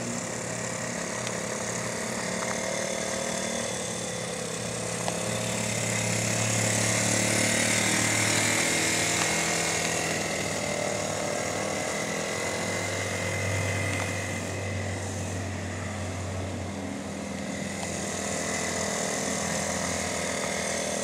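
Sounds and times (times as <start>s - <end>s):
motorbike engine passing by: 0.0s - 21.0s.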